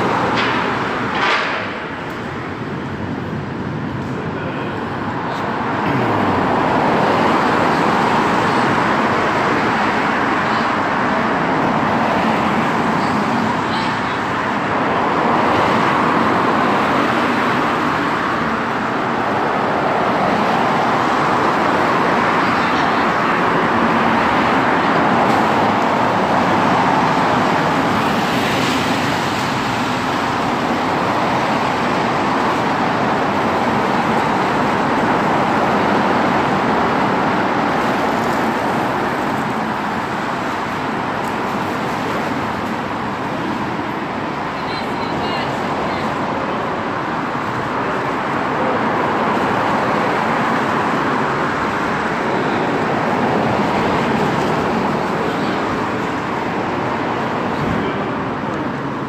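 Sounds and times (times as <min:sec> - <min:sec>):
cars driving past on wet road: 0:00.0 - 0:59.0.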